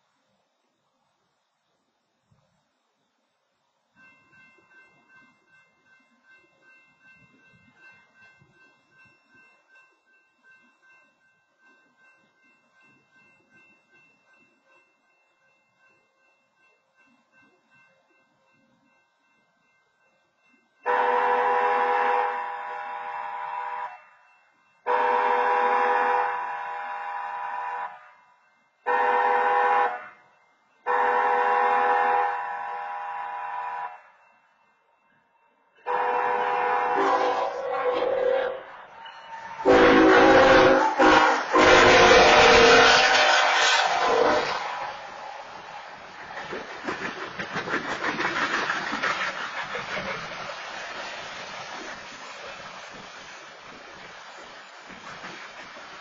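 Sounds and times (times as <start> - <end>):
crossing warning horn blasts: 20.8 - 24.2, 24.8 - 34.2, 35.8 - 38.7, 39.4 - 45.3
locomotive air horn: 20.8 - 24.2, 24.9 - 28.2, 28.9 - 34.2, 35.8 - 38.7, 39.6 - 45.2
train wheels rumbling on rails: 35.8 - 56.0.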